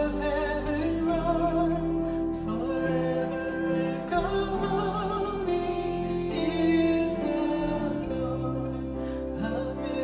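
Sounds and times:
worship band playing slow song: 0.0s - 10.0s.

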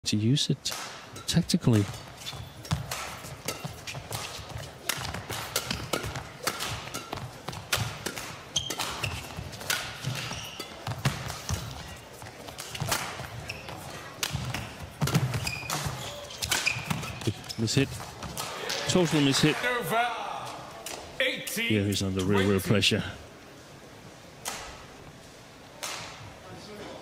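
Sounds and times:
racket striking shuttlecock: 0.7s - 17.2s
shoes squeaking on court: 1.2s - 18.6s.

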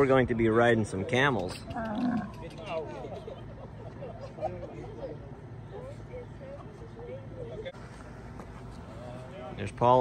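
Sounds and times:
camel groaning: 1.7s - 2.4s.

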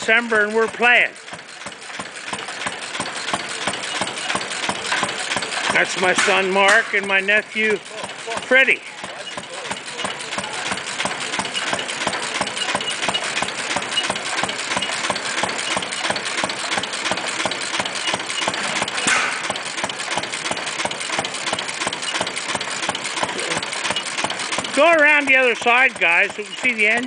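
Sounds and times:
gasoline engine running: 0.0s - 27.0s.

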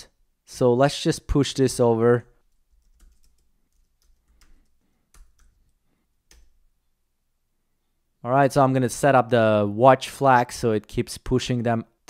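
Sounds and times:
soft keyboard typing: 2.4s - 6.7s.

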